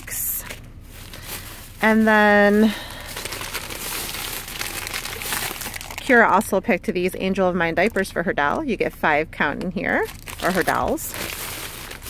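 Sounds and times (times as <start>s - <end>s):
plastic bags rustling and crinkling: 0.0s - 6.5s, 9.8s - 12.0s.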